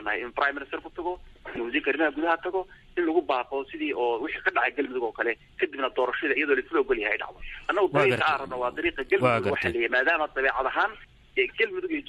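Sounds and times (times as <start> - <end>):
radio news voice: 7.7 - 9.8.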